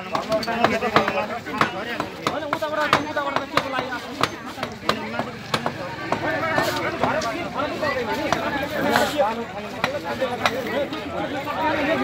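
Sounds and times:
men talking over one another: 0.0 - 12.0
hand tools striking rubble: 0.1 - 7.3.

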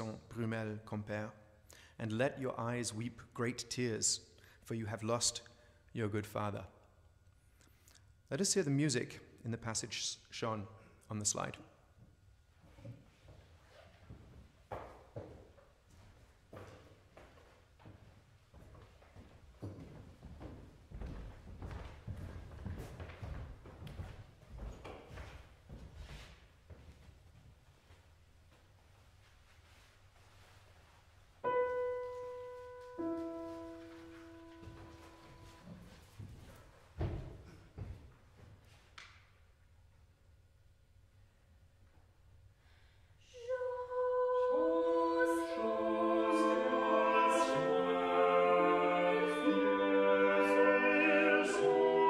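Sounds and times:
footsteps on wooden stage: 12.6 - 30.4, 31.8 - 39.0
grand piano notes: 31.4 - 37.8.

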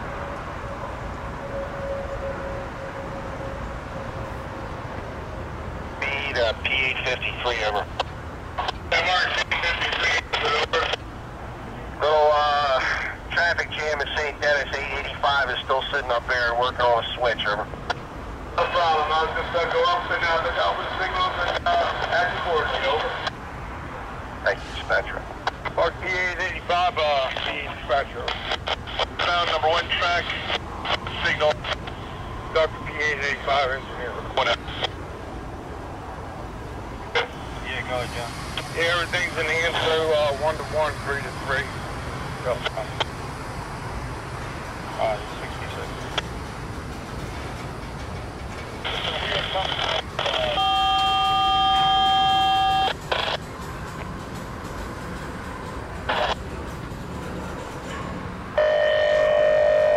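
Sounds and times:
radio voice transmissions: 6.0 - 11.0, 11.9 - 17.8, 18.6 - 23.3, 24.4 - 35.0, 37.1 - 41.7, 42.4 - 43.1, 44.9 - 46.2, 48.8 - 53.4, 56.1 - 56.4.

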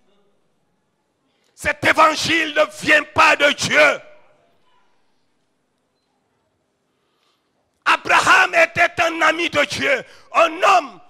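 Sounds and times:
man speaking into a microphone: 1.6 - 4.3, 7.8 - 11.0.

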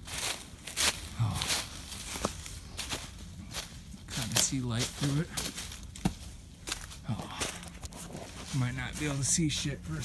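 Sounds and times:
footsteps crunching through dry leaves: 0.0 - 10.0.

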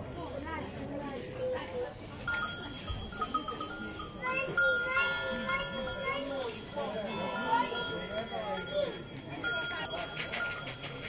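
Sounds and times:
small bells ringing: 2.2 - 11.0.

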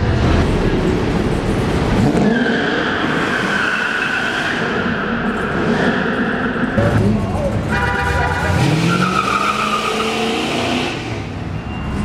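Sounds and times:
car engine revving: 0.0 - 11.4.

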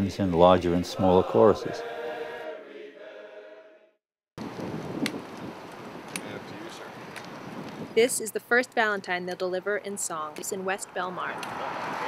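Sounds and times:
men's chorus singing a chord: 0.6 - 3.9.

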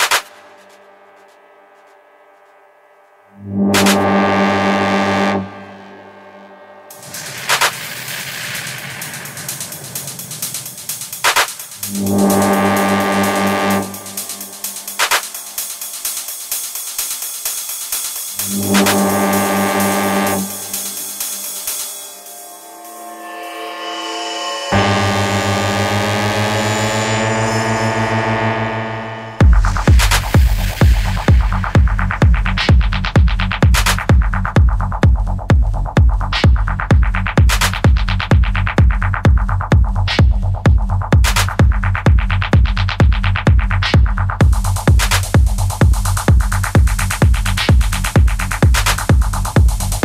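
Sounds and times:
electronic dance music: 0.0 - 0.8, 3.6 - 6.3, 6.9 - 50.0
low synthesized drone: 0.3 - 7.3, 11.8 - 14.8, 18.4 - 33.1
pulsing bass line: 3.3 - 7.2, 11.8 - 15.0, 18.3 - 21.5, 24.7 - 50.0.

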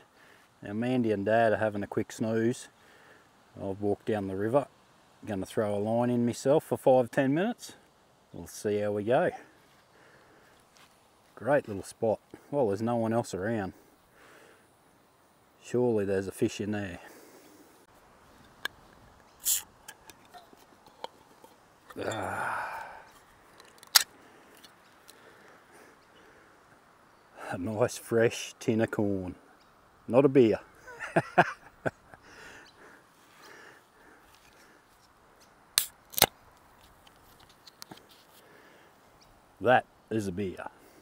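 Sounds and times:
faint outdoor background: 0.0 - 41.0
tin opening crack: 19.4 - 22.3, 23.5 - 25.2, 35.8 - 38.3.

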